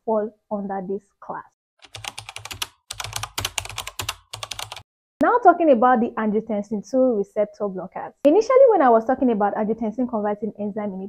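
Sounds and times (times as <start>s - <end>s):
keyboard typing: 1.8s - 4.9s.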